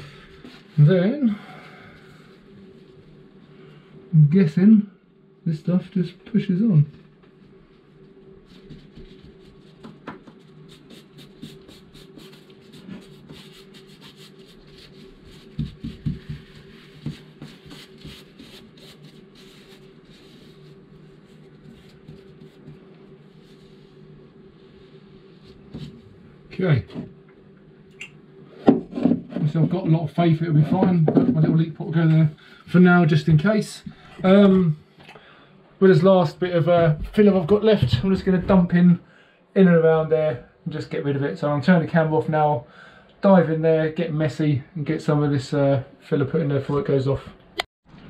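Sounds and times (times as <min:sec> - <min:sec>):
steady low hum: 0:00.0 - 0:47.6.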